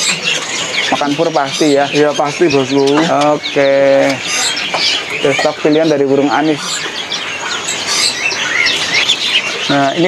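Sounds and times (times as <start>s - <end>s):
caged songbirds chirping: 0.0s - 10.0s.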